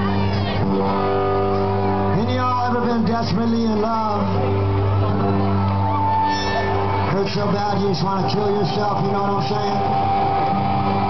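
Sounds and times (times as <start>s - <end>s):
live rock band: 0.0s - 11.0s
electric guitar ringing chord: 0.2s - 11.0s.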